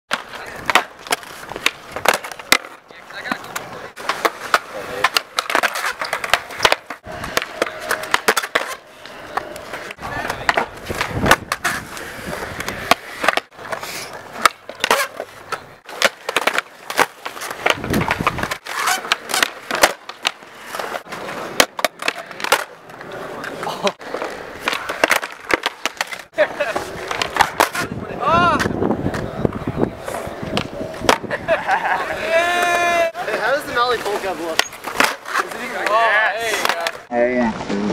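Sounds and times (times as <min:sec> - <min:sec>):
skateboard tail pops and landings: 0:00.1 - 0:03.4, 0:10.4 - 0:11.8
skateboard rolling on concrete: 0:00.1 - 0:37.9.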